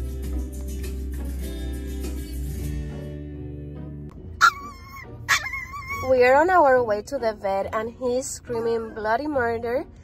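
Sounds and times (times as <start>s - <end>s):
background music: 0.0s - 10.0s
puppy crying high-pitched: 4.4s - 6.2s.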